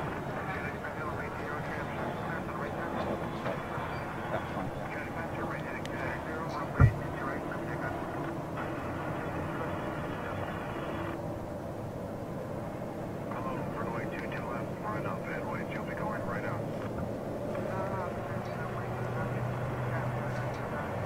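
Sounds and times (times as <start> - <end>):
indistinct radio voices: 0.0 - 11.2, 13.3 - 21.0
radio hiss: 0.0 - 11.2, 13.3 - 16.6
jet airliner engines: 0.0 - 21.0.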